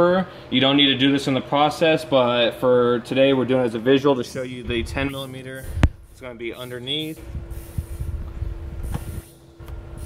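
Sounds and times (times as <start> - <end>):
steady background hum: 0.0 - 10.0
microphone handling rumble: 4.6 - 6.5, 7.2 - 9.9.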